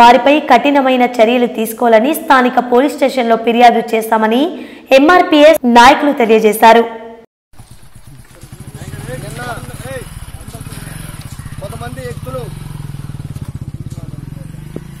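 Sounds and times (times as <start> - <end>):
engine running with fast pulse: 7.6 - 15.0
voices calling out: 7.6 - 15.0.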